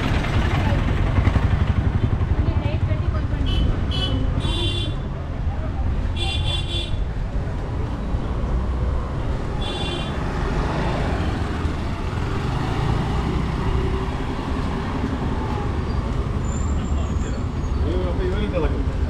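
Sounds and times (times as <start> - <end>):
low traffic rumble: 0.0 - 19.0
motorbikes passing: 0.0 - 19.0.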